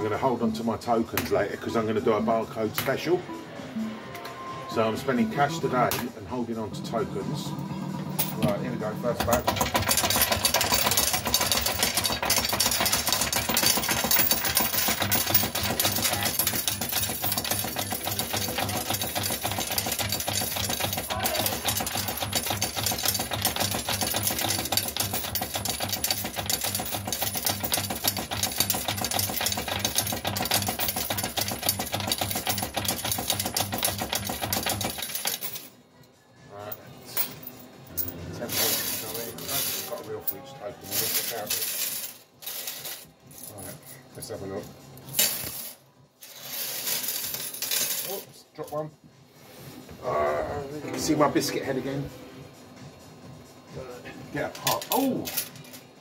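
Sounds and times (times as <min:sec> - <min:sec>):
coins clattering into tray: 0:08.2 - 0:08.6, 0:09.2 - 0:35.8, 0:37.1 - 0:44.0, 0:45.1 - 0:48.3, 0:54.5 - 0:56.0.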